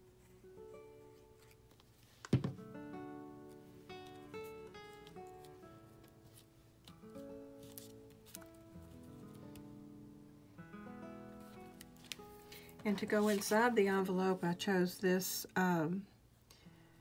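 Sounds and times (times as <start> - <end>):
quiet background music: 0.0 - 17.0.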